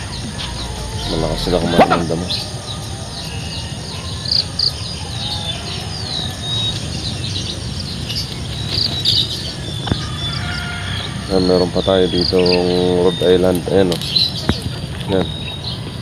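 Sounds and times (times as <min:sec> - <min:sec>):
low rumble: 0:00.0 - 0:03.9
high insect drone: 0:00.0 - 0:16.0
small birds chirping: 0:00.0 - 0:16.0.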